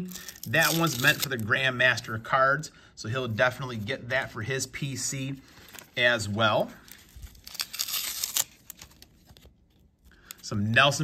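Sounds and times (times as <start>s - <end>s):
plastic sleeves rustling: 0.0s - 1.7s, 4.9s - 11.0s.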